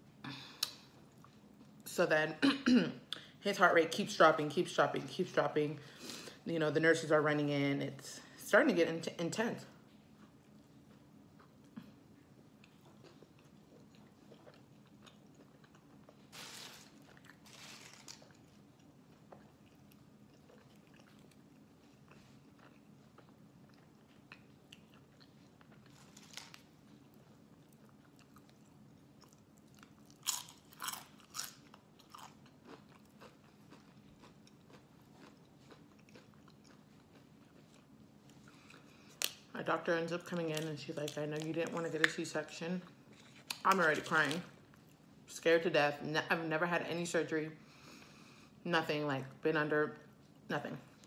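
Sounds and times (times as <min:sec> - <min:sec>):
chewing food: 0:10.1 - 0:39.5
crisp chips crunching: 0:13.0 - 0:21.6, 0:22.5 - 0:28.6, 0:29.6 - 0:37.9, 0:43.1 - 0:44.6.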